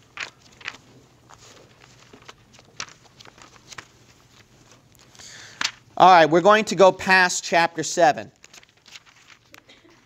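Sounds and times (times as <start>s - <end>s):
thin pages being turned: 0.0s - 5.9s, 8.4s - 9.7s.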